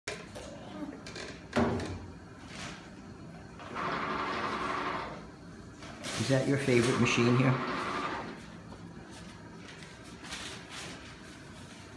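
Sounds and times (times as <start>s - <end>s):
paper towel dispenser motor whirring: 3.6s - 8.6s.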